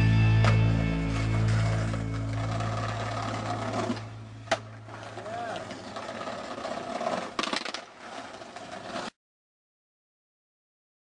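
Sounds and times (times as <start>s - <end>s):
skateboard wheels rolling on concrete: 0.0s - 9.2s
sharp skateboard clack: 1.4s - 9.1s.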